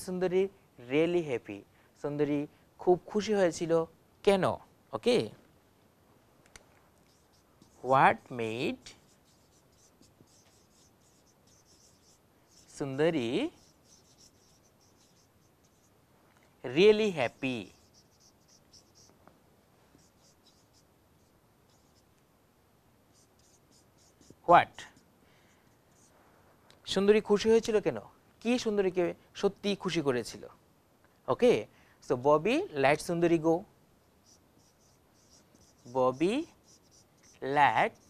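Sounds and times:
marker squeaking on whiteboard: 7.0s - 16.0s, 16.7s - 19.2s, 19.9s - 22.2s, 23.1s - 25.1s, 25.7s - 26.2s, 34.0s - 38.0s.

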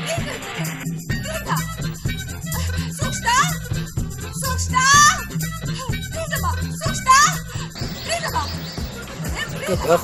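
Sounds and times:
background music: 0.0s - 10.0s
high voices: 6.1s - 10.0s.

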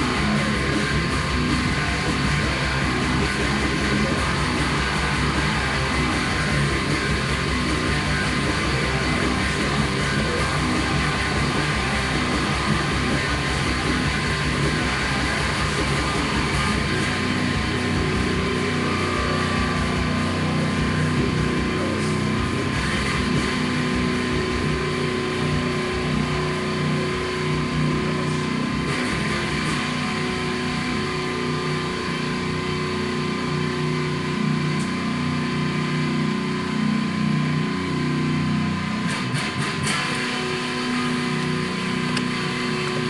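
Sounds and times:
distorted electric guitar riffs: 0.0s - 43.0s.

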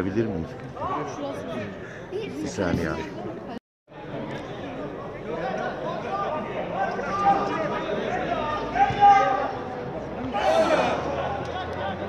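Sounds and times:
men talking and calling out: 4.6s - 12.0s.

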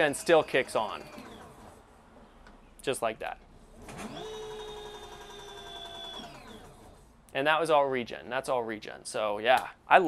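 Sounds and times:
electric motor whining: 3.9s - 7.0s.

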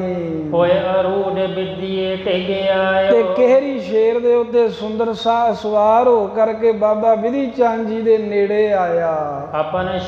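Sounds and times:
man chanting held notes: 0.0s - 5.0s.

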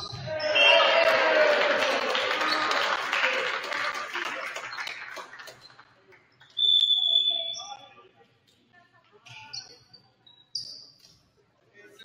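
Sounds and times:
referee's whistle: 0.0s - 1.1s, 6.6s - 7.9s
crowd cheering and calling out: 0.3s - 3.2s.

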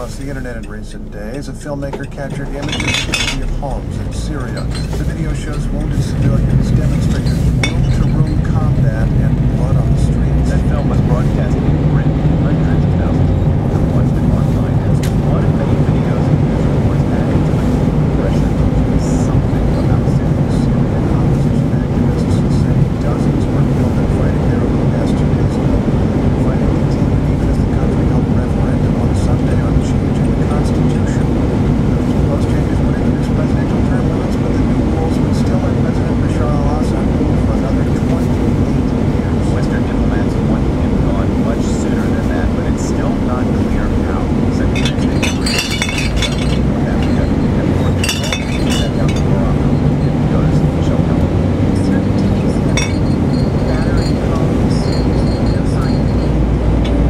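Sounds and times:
car engine and tyre rumble: 0.0s - 57.0s
faint voice: 7.9s - 17.6s.

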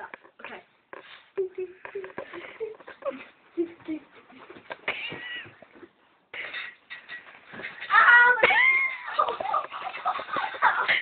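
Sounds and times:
knocks and rustles: 4.4s - 8.0s.

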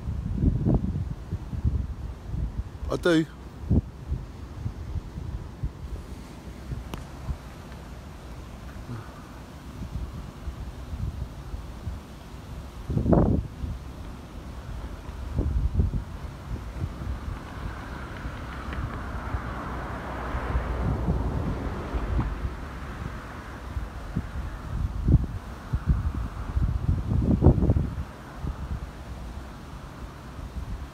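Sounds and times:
faint steady rush: 0.0s - 30.9s
wind buffeting microphone: 0.0s - 30.9s.

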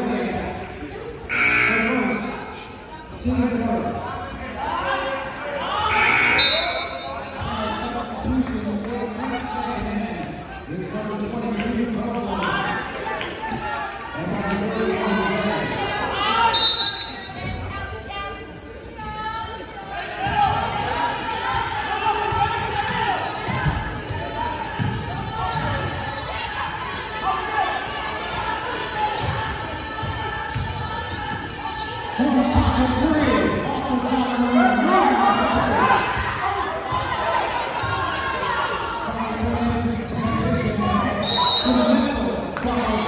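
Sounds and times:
voices of spectators: 0.0s - 43.0s.

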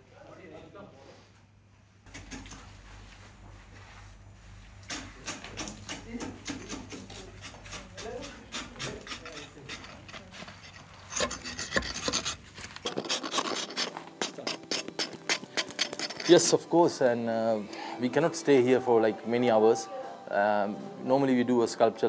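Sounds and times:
chisel scraping ice: 7.7s - 16.6s.

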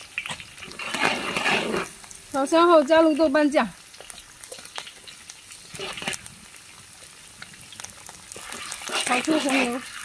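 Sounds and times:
food sizzling in hot oil: 0.0s - 10.0s
metal spatula scraping wok: 0.2s - 2.1s, 5.6s - 6.3s, 8.3s - 10.0s.

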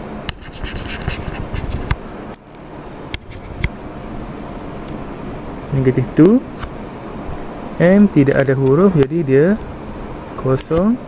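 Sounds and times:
stylus scratching and tapping: 0.3s - 3.7s.

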